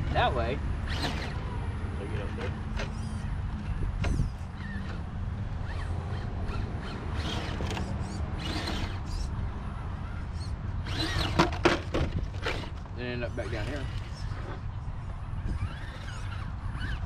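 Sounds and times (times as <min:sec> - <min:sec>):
rc truck motor rumble: 0:00.0 - 0:17.0
loud clatter of truck tipping: 0:10.9 - 0:12.9.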